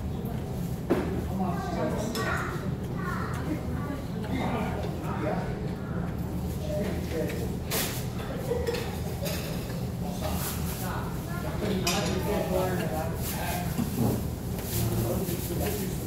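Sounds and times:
utensils clinking against dishes: 6.6 - 10.9, 11.6 - 16.0.

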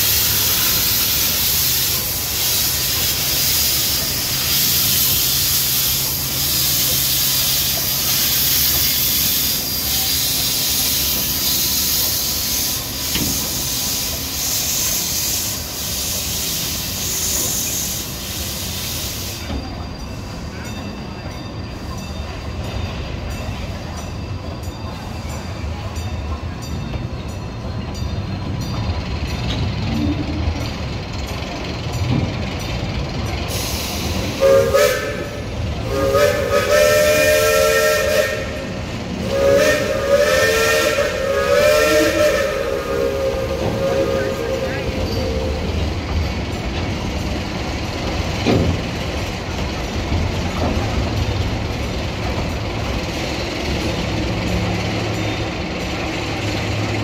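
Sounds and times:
steam hissing with pulsing beat: 0.0 - 20.7, 30.8 - 57.0
rumble of passenger cars rolling: 0.0 - 57.0
steam whistle blasts: 33.5 - 45.8.

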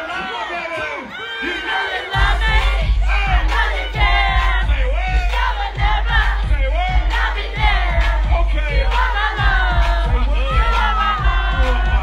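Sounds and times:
crowd yelling and singing: 0.0 - 12.0
heavy hip-hop beat over speakers: 0.1 - 12.0.

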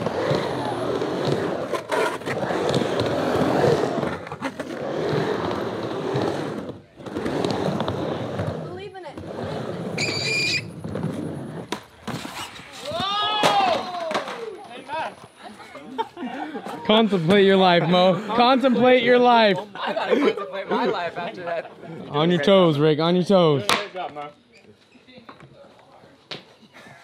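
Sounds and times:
skateboard wheels rolling on ramp: 0.0 - 15.3
brief high squeal: 10.0 - 10.7.

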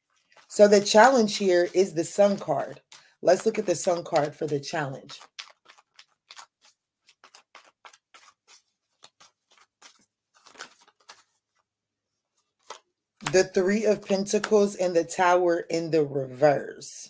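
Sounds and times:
cards flicking and rustling: 0.1 - 11.7, 12.4 - 14.7.

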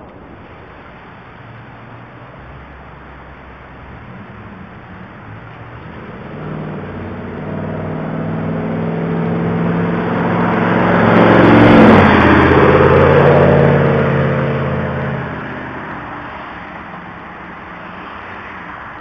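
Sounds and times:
motorcycle driving past: 5.6 - 16.0.

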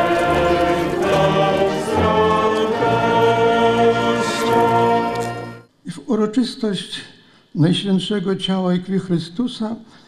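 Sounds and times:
choir singing a slow hymn: 0.0 - 5.6.

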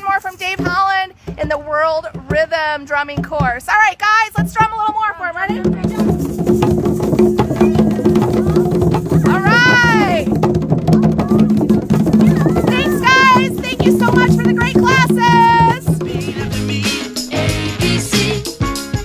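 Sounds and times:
hand drums playing: 0.0 - 19.0
high voices calling out: 5.5 - 18.0.

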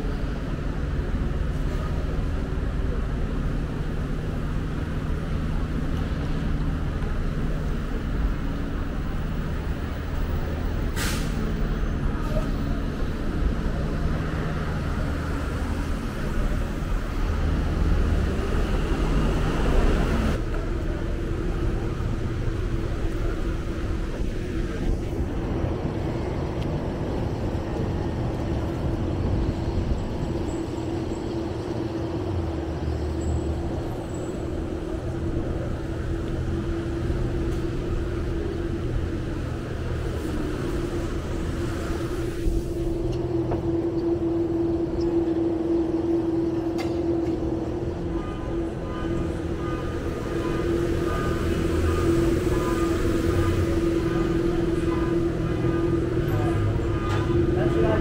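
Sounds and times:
truck and bus engines humming: 0.0 - 58.0
air brake hiss: 10.9 - 11.5
vehicle revving and passing: 48.0 - 58.0.

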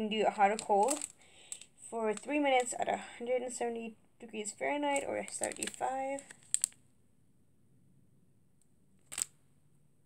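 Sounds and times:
foil sachet crinkling click: 0.6 - 2.3, 5.3 - 6.8.

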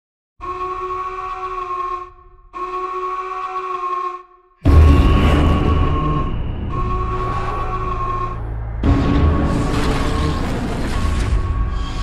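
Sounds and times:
long horn blasts: 0.4 - 10.2.

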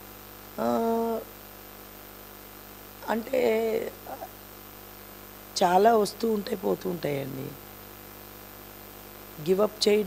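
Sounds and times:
steady electrical hum: 0.0 - 10.0
woman's hesitation vocal sound: 0.6 - 1.3.

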